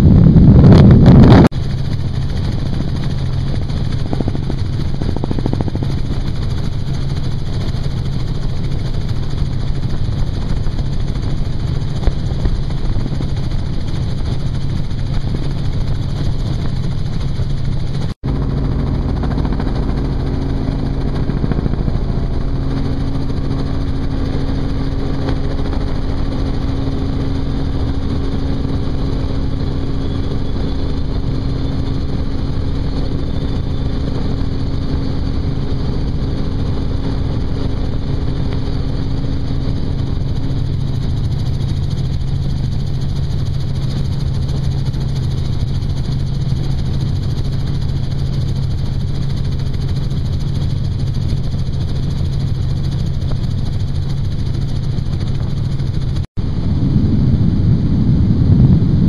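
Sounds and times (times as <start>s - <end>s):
helicopter rotor and engine drone: 0.0s - 59.0s
steady hum: 0.0s - 59.0s.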